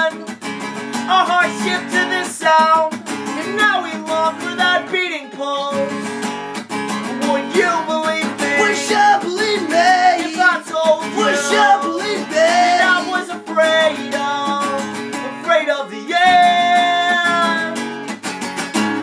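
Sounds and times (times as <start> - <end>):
acoustic guitar strumming: 0.0 - 19.0
men singing together: 7.2 - 17.8.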